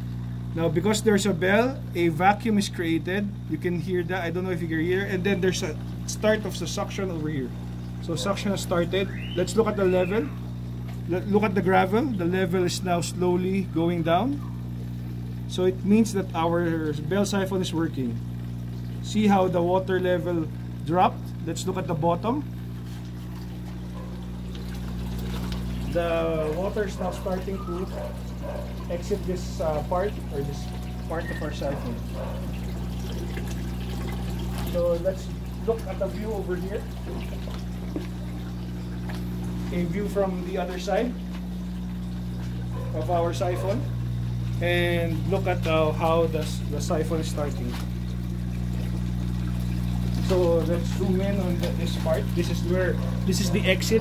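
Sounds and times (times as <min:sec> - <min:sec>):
steady low hum: 0:00.0 - 0:54.0
water pouring into a tank: 0:00.0 - 0:54.0.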